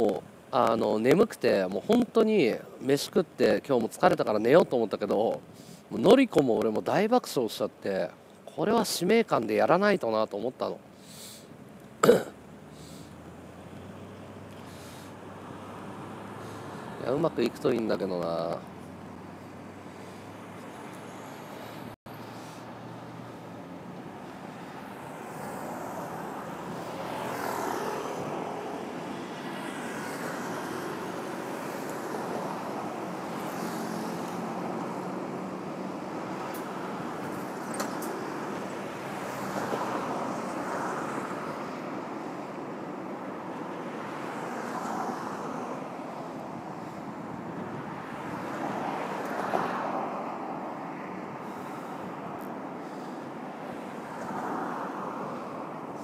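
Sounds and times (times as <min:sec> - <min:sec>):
cars passing: 0:00.0 - 0:56.0
road hum: 0:00.0 - 0:56.0.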